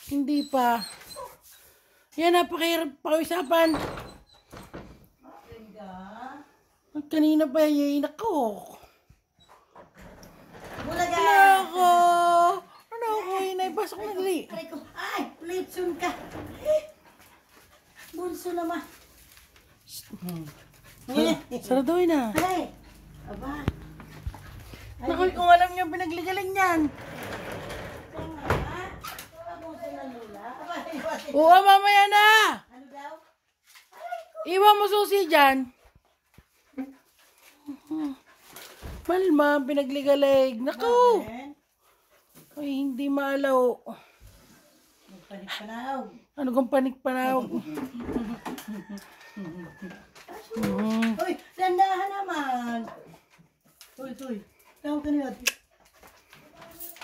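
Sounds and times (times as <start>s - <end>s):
door scraping and rustling: 9.6s - 11.6s, 15.5s - 17.0s, 22.8s - 29.4s.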